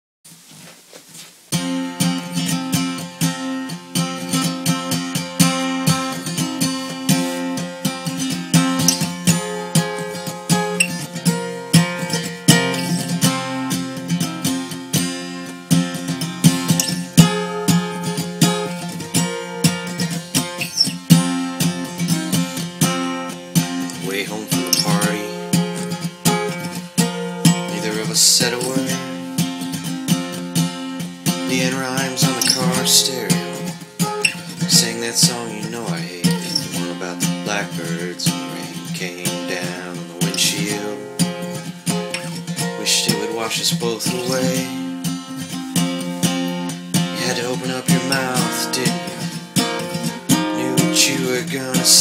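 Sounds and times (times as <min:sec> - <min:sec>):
acoustic guitar strumming chords: 0:01.5 - 0:52.0.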